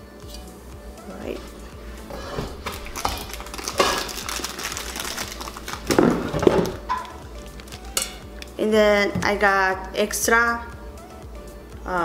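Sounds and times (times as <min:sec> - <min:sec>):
packaging rustling: 0:02.6 - 0:07.8.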